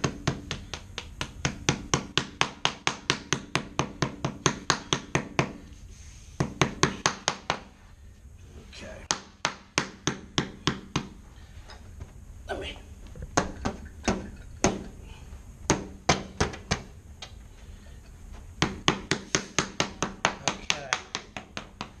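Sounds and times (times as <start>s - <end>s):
rubber mallet tapping molding: 0.0s - 5.6s, 9.1s - 11.2s, 15.7s - 16.9s, 18.6s - 22.0s.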